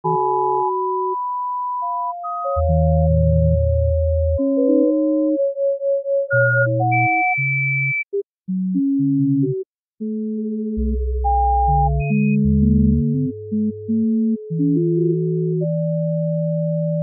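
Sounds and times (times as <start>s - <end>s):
sine-wave electronic music: 0.0s - 17.0s
low bass tone: 10.8s - 15.7s.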